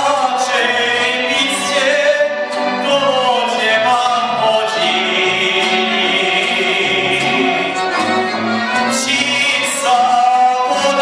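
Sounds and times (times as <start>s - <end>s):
man singing into a microphone: 0.0s - 8.1s, 8.7s - 11.0s
keyboard: 0.0s - 11.0s
violin: 0.0s - 11.0s.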